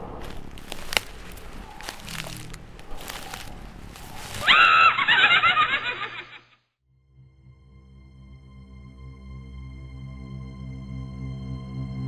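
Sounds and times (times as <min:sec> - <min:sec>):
faint rustling haze: 0:00.0 - 0:05.6
cry-like horror sound effect: 0:04.4 - 0:05.4.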